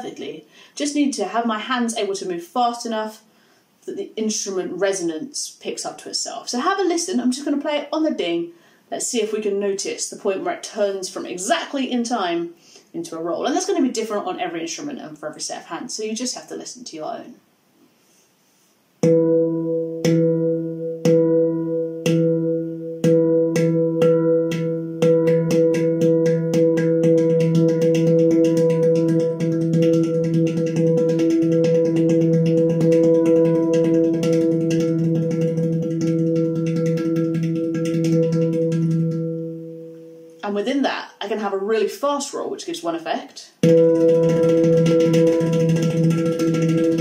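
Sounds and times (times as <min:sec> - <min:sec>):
handpan note strokes and roll: 0:19.0 - 0:40.4, 0:43.6 - 0:47.0.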